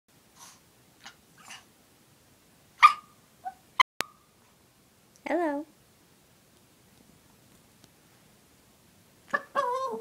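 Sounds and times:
small dog breathy sounds: 0.3 - 1.7
small dog whining: 2.8 - 3.8, 9.3 - 10.0
small dog yipping: 2.8 - 4.2, 9.3 - 10.0.

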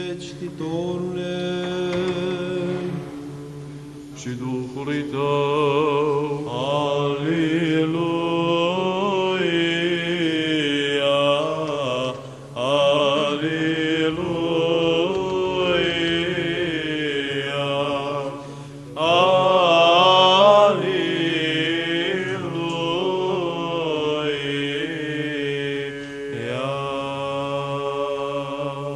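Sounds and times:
cantors chanting ornamented melody: 0.0 - 28.9
steady held vocal drone: 0.0 - 28.9.

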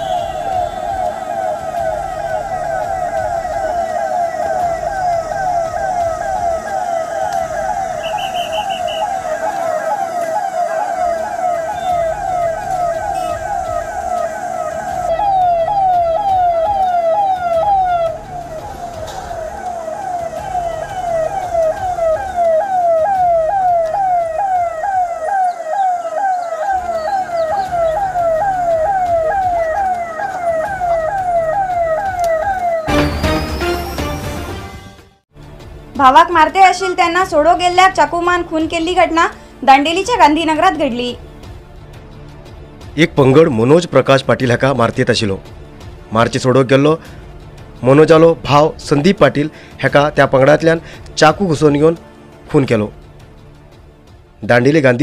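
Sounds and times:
siren wailing: 0.0 - 34.8.

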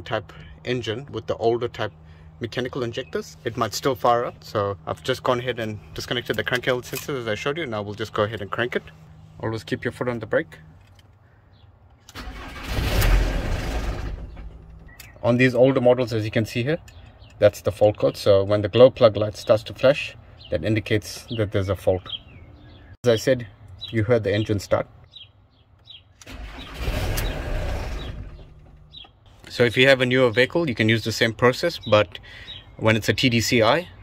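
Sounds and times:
diesel engine cranking and firing: 12.0 - 15.4, 26.1 - 29.3.

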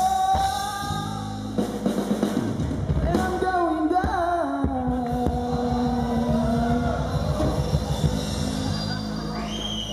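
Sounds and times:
live band music: 0.0 - 9.9.

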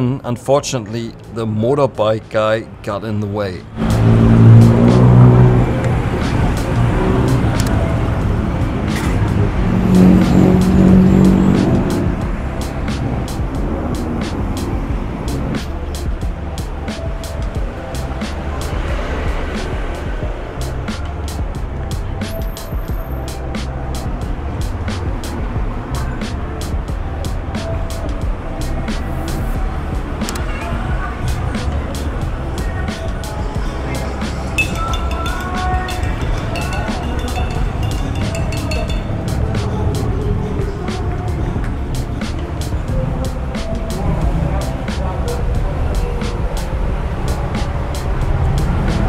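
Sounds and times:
background music with steady beat: 0.0 - 49.0
street traffic: 0.0 - 49.0
motorbike engines running: 3.7 - 49.0.

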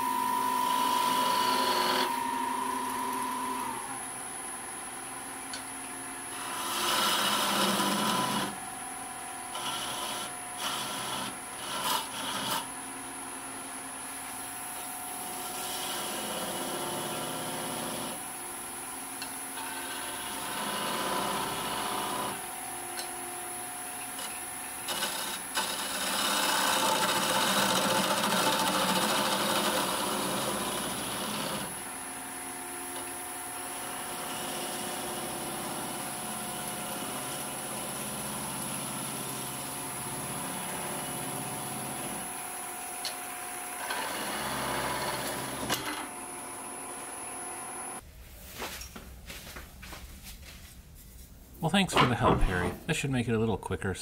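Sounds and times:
turning tool cutting wood: 0.0 - 4.0, 6.3 - 8.7, 9.5 - 12.7, 15.1 - 18.3, 19.2 - 22.6, 24.0 - 32.0, 32.7 - 48.0
wood lathe humming: 0.0 - 48.0.

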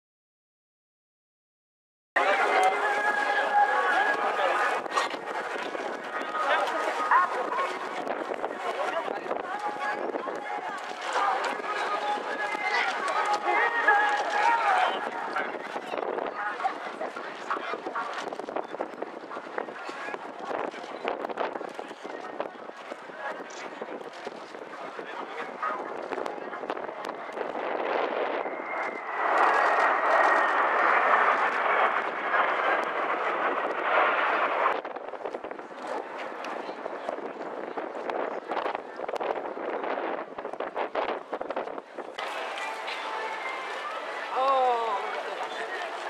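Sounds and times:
jet engine roar: 2.2 - 22.0, 23.8 - 41.4, 42.0 - 46.0
people talking: 2.2 - 33.5, 35.7 - 39.5, 42.2 - 46.0
high jet whine falling in pitch: 27.1 - 34.9.

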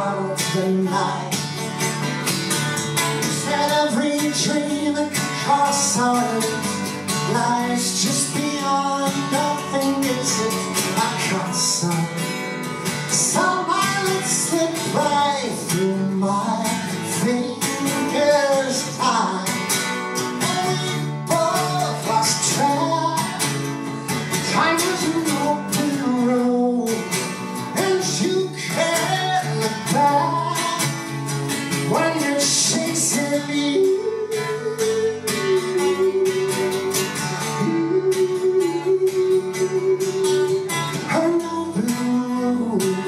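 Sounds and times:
man singing folk song: 0.0 - 43.0
strummed acoustic guitar: 0.0 - 43.0.

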